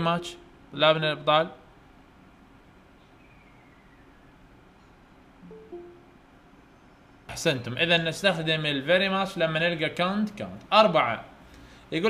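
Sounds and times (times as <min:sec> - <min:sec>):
two-note tone: 0:05.4 - 0:06.2.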